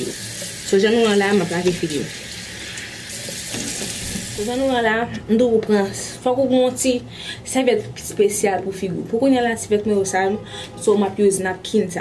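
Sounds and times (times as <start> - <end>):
tap water running into sink: 0.0 - 4.7.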